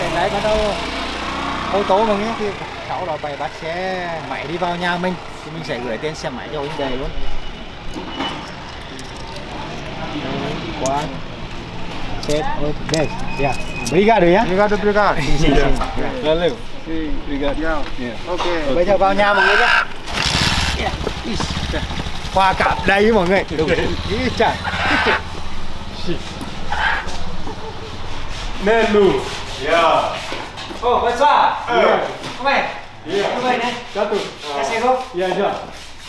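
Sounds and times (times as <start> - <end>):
motorcycle engine idling: 20.0 - 26.0.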